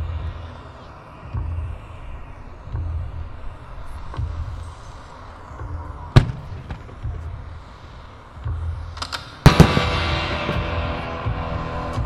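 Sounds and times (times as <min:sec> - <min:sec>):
firework bangs: 0:06.2 - 0:07.3, 0:09.3 - 0:11.1.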